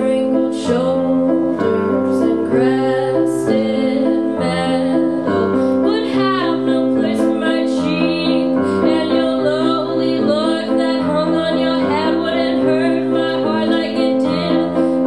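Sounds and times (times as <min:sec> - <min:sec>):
held keyboard chords: 0:00.0 - 0:15.0
woman singing a slow song: 0:00.0 - 0:15.0.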